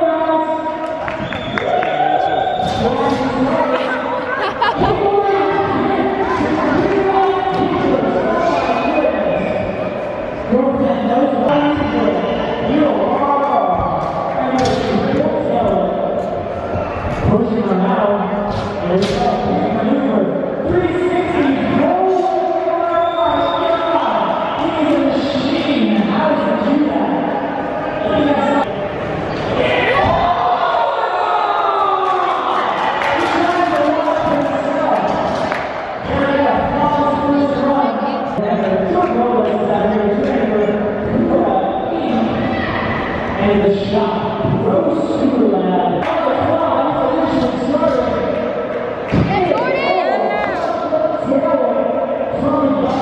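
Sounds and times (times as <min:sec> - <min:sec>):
crowd noise: 0:00.0 - 0:53.0
voices echoing in a hall: 0:00.0 - 0:53.0.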